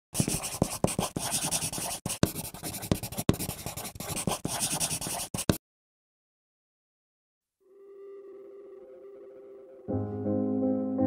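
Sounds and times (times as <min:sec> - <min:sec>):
pencil scratching on paper: 0:00.2 - 0:05.6.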